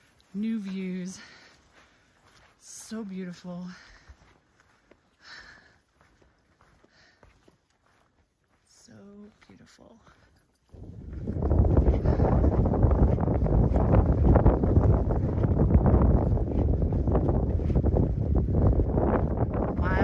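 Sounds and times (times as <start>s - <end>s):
gusty wind buffeting microphone: 10.7s - 20.0s.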